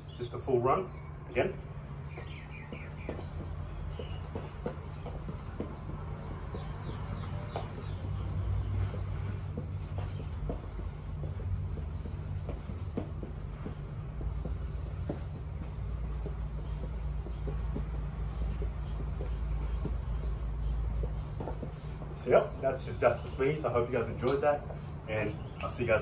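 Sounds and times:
birds chirping: 0.0s - 26.0s
dancing footsteps on hard floor: 1.6s - 26.0s.

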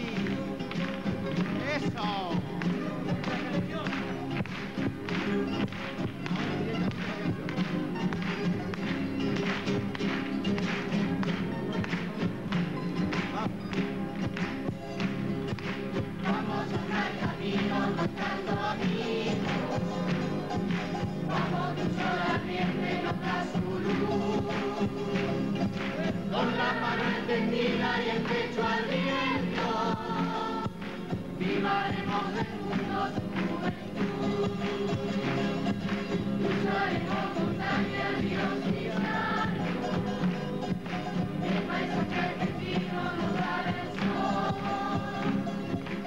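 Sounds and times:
strummed acoustic guitars: 0.0s - 46.0s
group singing in chorus: 16.0s - 46.0s.

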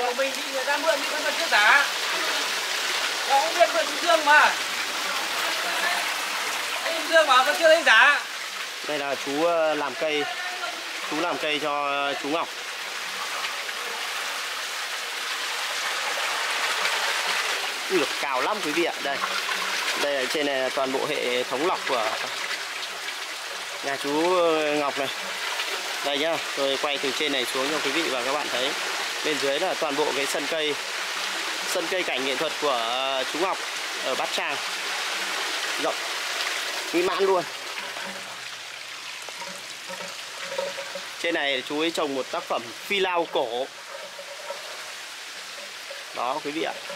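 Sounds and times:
water splashing into a pond: 0.0s - 46.9s.

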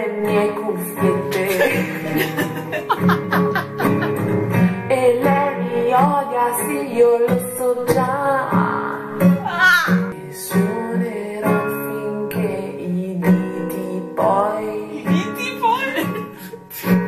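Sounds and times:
woman singing: 0.0s - 2.9s, 3.8s - 17.0s
classical guitar strummed and plucked: 0.0s - 17.0s.

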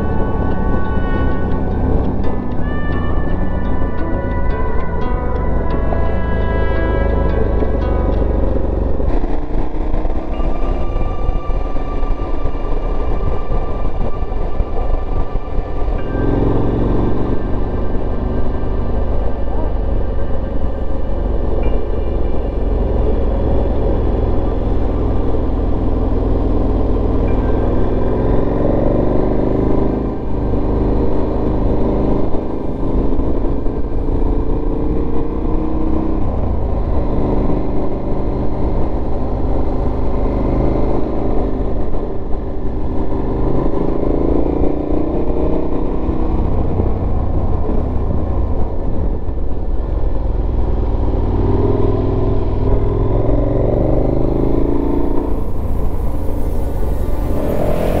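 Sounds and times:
motorcycle engine accelerating: 0.0s - 58.0s
wind noise rumble: 0.0s - 58.0s.

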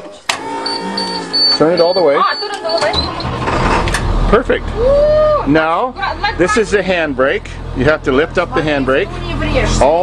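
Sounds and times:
bus engine starting and rumbling: 0.2s - 10.0s
high intermittent beep: 0.6s - 3.4s.

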